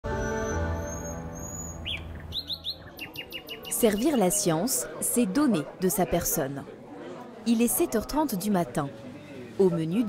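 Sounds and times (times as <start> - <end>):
birds chirping: 0.1 - 4.7.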